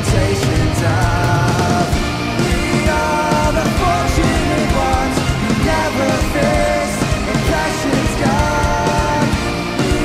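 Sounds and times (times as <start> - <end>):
electric guitars: 0.0 - 10.0
steady drum beat: 0.0 - 10.0.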